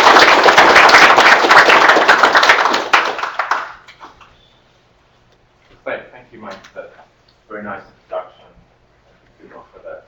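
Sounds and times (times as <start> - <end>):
audience applauding: 0.0 - 4.1.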